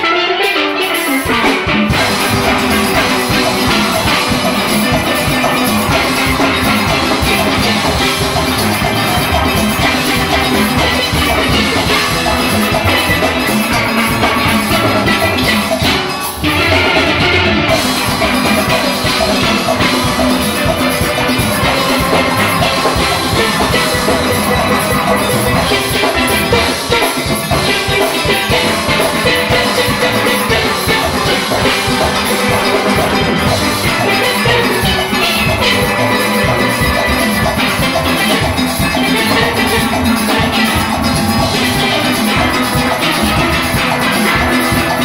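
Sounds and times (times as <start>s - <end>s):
drum kit and percussion: 0.0s - 45.0s
steelpans playing a tune: 0.0s - 45.0s.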